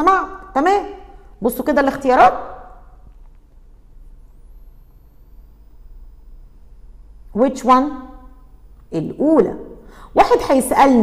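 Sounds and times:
faint high-pitched whine: 0.0s - 11.0s
low hum and hiss: 0.0s - 11.0s.

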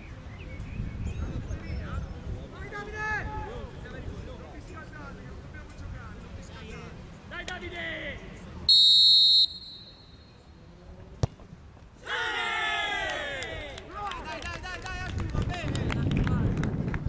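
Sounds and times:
referee's whistle blast: 8.7s - 10.2s
voices shouting and cheering: 12.0s - 15.7s.

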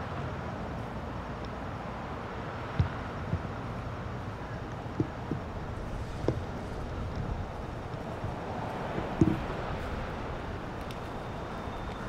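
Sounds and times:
outdoor background rumble: 0.0s - 12.0s
low thumps: 8.2s - 9.8s.

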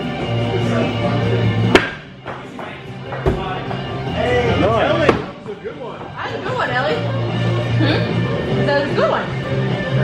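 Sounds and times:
background music: 0.0s - 10.0s
axe hitting wooden board: 1.7s - 2.0s.

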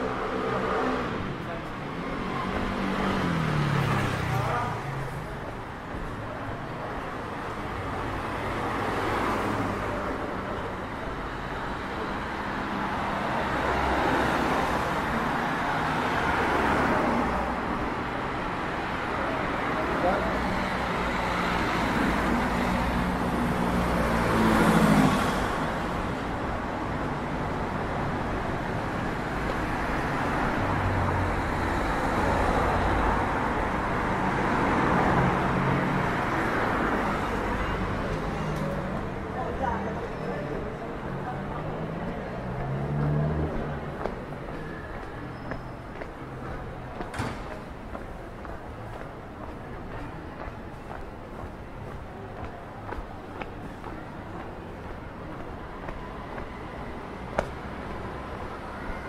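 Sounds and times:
cars driving past: 0.0s - 59.0s.

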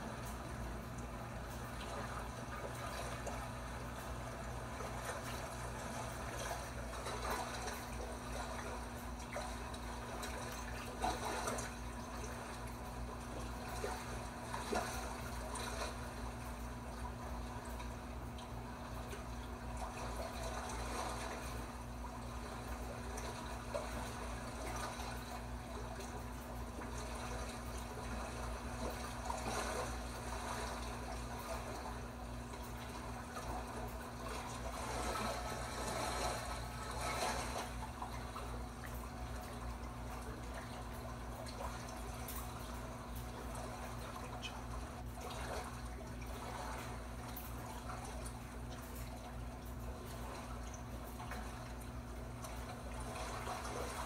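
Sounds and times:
water trickling and bubbling: 0.0s - 54.0s.

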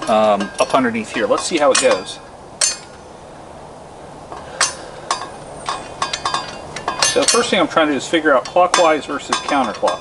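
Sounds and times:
sharp metallic clicks and clinks: 0.0s - 3.0s, 4.3s - 10.0s.

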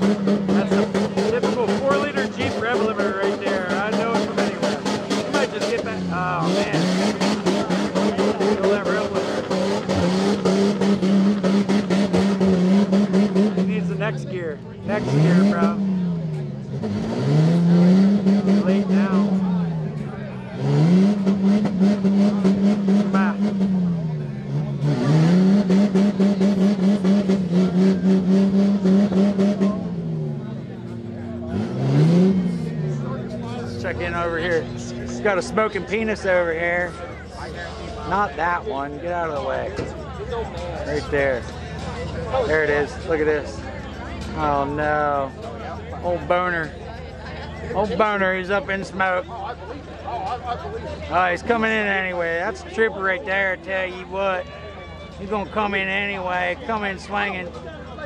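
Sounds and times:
engine revving: 0.0s - 46.8s.

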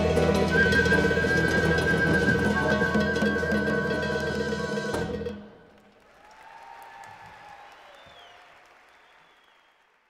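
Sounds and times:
faint audience applause: 5.7s - 10.0s.

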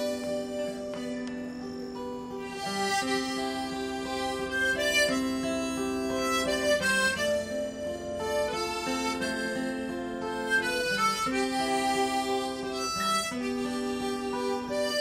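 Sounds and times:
acoustic guitar: 0.0s - 15.0s
harmonica melody: 0.0s - 15.0s.

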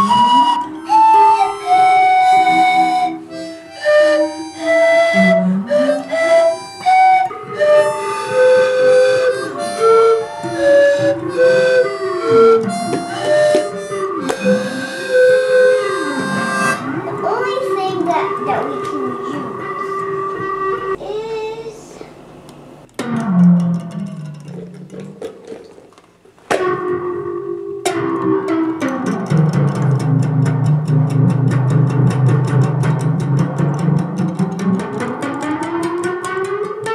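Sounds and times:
pan flute melody: 0.0s - 21.0s, 26.5s - 36.9s
plucked string instrument notes: 0.0s - 21.0s, 23.0s - 36.9s.

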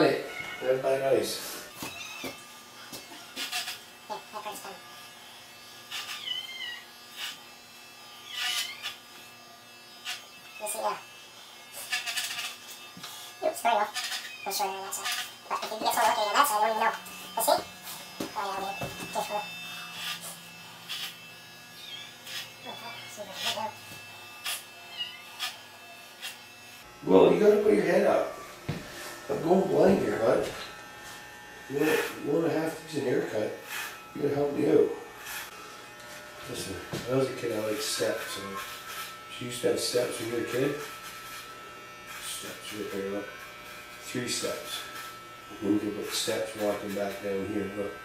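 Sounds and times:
electric hair clippers humming: 0.0s - 48.0s.

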